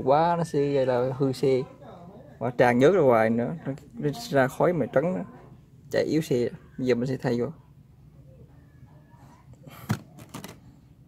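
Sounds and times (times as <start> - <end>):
plastic bottle set down: 9.8 - 10.6.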